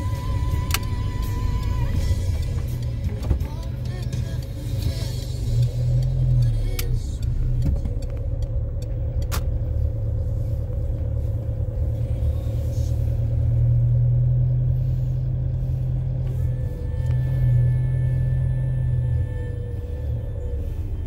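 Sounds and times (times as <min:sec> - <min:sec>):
car rumbling: 0:00.0 - 0:21.0
sharp clicks: 0:00.4 - 0:09.6.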